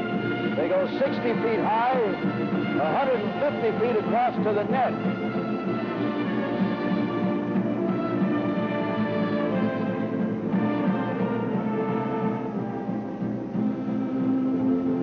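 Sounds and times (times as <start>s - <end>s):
orchestral string chords: 0.0s - 15.0s.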